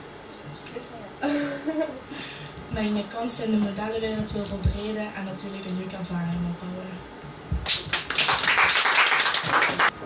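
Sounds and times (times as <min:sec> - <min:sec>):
audience applauding: 0:07.7 - 0:10.0.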